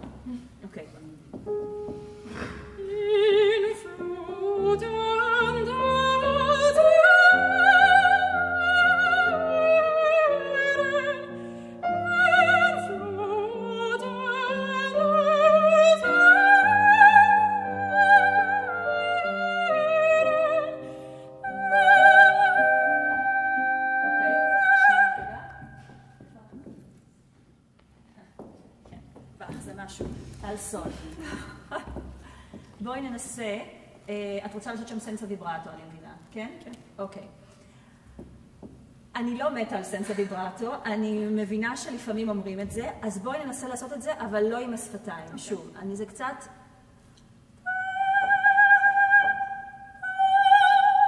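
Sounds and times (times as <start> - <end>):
high heels on wooden stage: 0.0 - 3.4, 24.8 - 34.1, 36.2 - 39.2
piano: 0.0 - 36.3.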